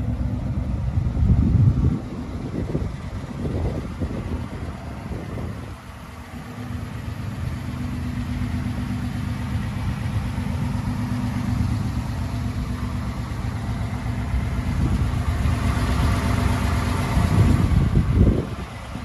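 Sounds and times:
truck engine idling: 0.0s - 19.0s.

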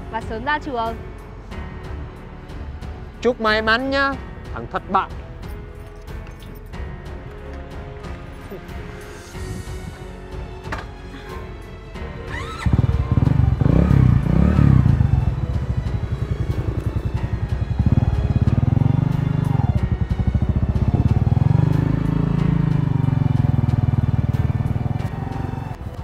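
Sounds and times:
motorcycle engine revving: 12.1s - 26.0s.

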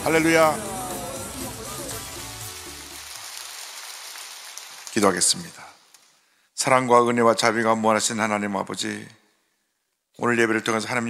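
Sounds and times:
congregation applauding: 0.0s - 5.9s.

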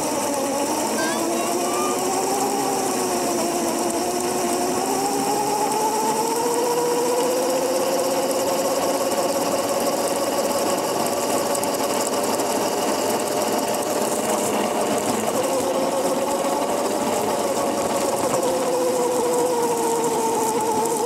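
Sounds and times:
small wheels rolling on asphalt: 0.0s - 21.0s
electric motor whining: 0.2s - 7.9s.

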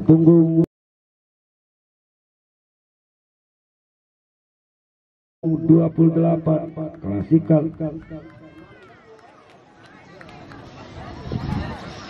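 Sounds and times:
people talking and calling out: 5.4s - 12.0s.

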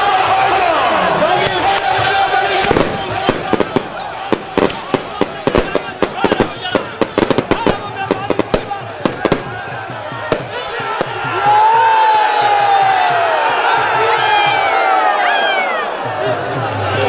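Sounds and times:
crowd shouting: 0.0s - 17.0s
firecrackers cracking: 1.4s - 11.4s.

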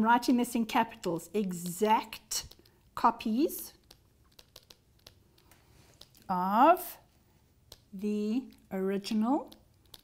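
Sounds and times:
stylus tapping on pen tablet: 1.4s - 6.3s, 7.6s - 10.0s.

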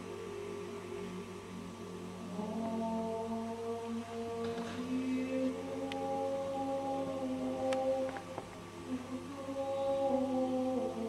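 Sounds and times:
choir singing sustained chords: 0.0s - 11.0s
steady electrical hum: 0.0s - 11.0s.

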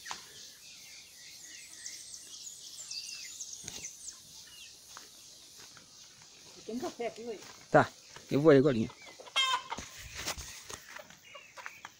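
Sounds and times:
small birds twittering: 0.0s - 11.9s.

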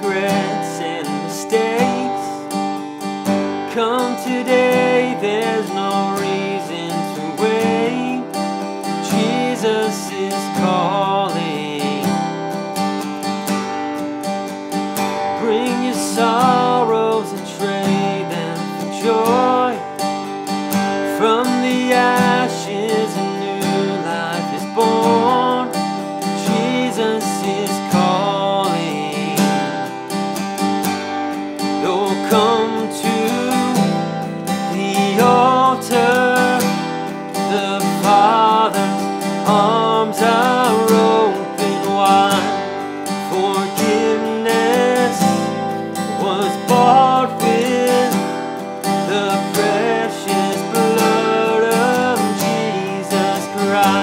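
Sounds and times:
man singing: 0.0s - 2.8s, 3.6s - 12.5s, 15.1s - 30.3s, 31.6s - 54.0s
acoustic guitar strumming: 0.0s - 54.0s.

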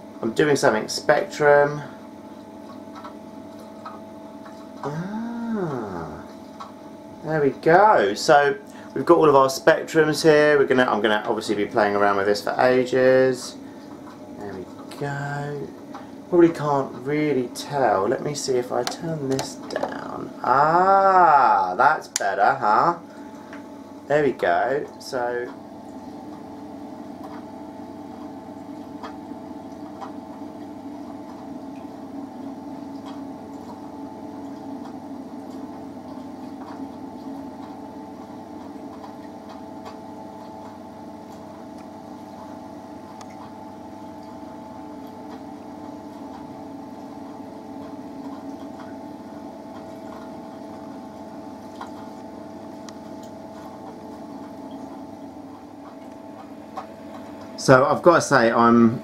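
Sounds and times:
aquarium pump hum: 0.0s - 59.0s
water trickling: 1.9s - 59.0s.

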